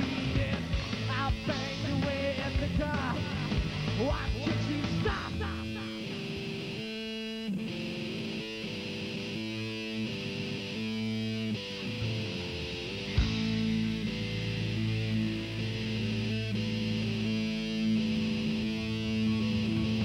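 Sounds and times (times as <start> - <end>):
bass guitar: 0.0 - 20.0
electric guitar: 0.0 - 20.0.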